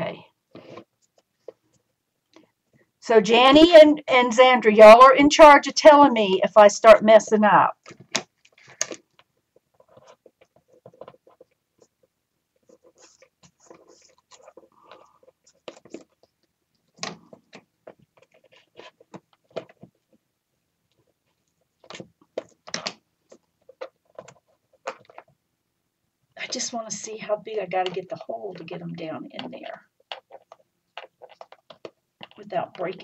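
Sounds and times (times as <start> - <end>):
paper clicks and rustles: 7.8 - 12.0, 12.6 - 20.2, 20.9 - 25.4, 29.4 - 33.0.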